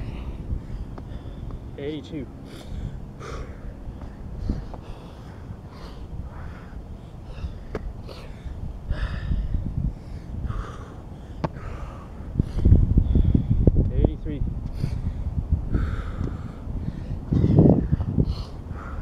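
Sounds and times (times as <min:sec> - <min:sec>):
sniffs and puffed breaths: 0:00.0 - 0:01.7, 0:02.4 - 0:13.7, 0:14.6 - 0:19.0
man breathing hard: 0:00.0 - 0:01.8, 0:02.4 - 0:13.8, 0:14.6 - 0:19.0.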